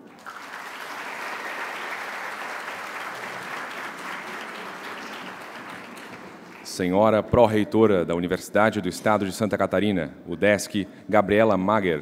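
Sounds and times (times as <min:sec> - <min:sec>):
audience applauding: 0:00.0 - 0:06.9.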